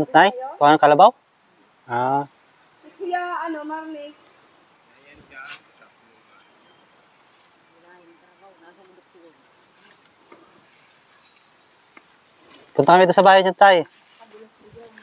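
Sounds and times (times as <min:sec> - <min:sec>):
insects droning: 0:00.0 - 0:15.0.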